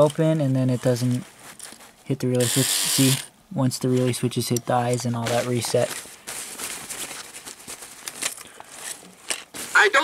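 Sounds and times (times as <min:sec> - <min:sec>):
cloth cape rustling: 0:05.2 - 0:10.0.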